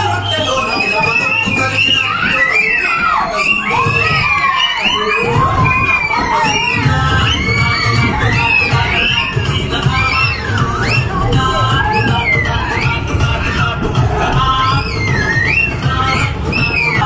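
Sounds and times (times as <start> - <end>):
children shouting and cheering: 0.0 - 17.0
pulsing music bass: 6.8 - 17.0.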